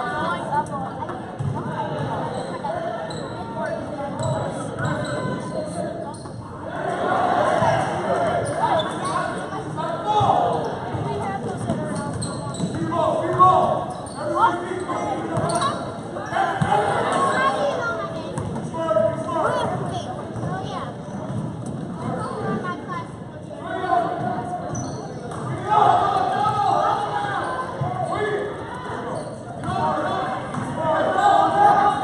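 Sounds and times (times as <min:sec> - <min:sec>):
spectators talking and calling out: 0:00.0 - 0:32.0
basketball bouncing on court: 0:01.4 - 0:02.1, 0:10.2 - 0:13.5, 0:18.4 - 0:18.6, 0:20.4 - 0:22.0.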